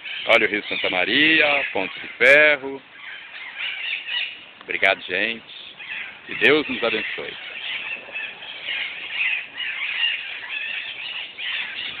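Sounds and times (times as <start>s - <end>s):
parrots calling: 0.0s - 12.0s.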